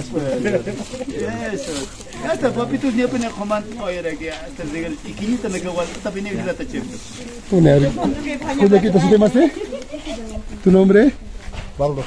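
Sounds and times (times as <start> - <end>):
people talking: 0.0 - 11.2.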